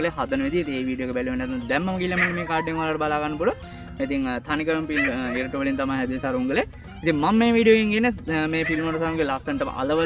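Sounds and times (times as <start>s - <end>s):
faint background music: 0.0s - 10.0s
man speaking: 0.0s - 10.0s.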